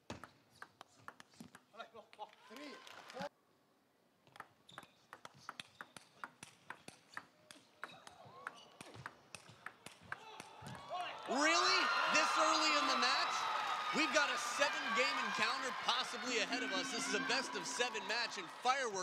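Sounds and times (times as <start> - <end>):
faint voices: 11.3 - 19.0.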